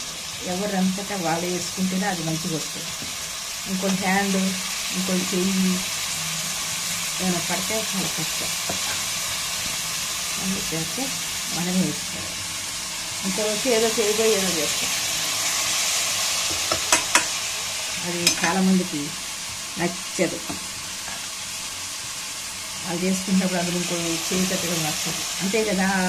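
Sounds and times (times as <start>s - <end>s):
chicken sizzling in hot oil: 0.0s - 26.0s.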